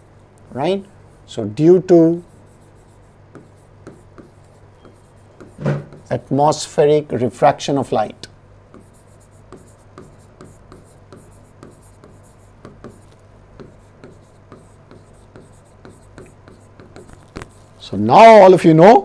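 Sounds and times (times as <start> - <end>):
stylus tapping and scratching on screen: 2.1 - 6.3, 8.7 - 17.8.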